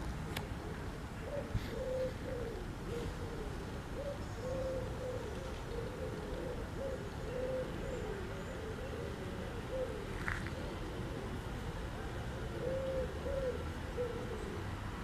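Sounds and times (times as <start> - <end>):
bird giving wavering calls: 1.2 - 11.3.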